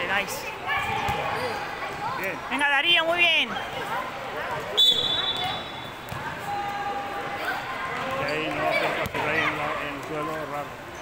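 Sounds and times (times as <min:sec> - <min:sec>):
referee's whistle blown: 0:04.8 - 0:07.1.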